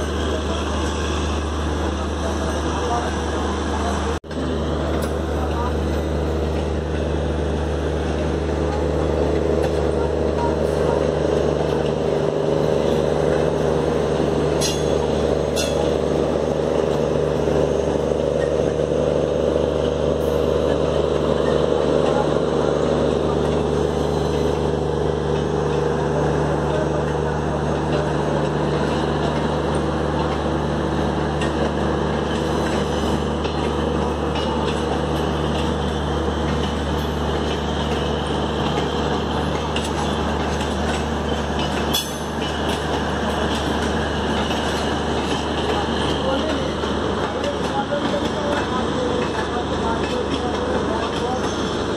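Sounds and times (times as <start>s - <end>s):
train running rumble: 0.0s - 51.9s.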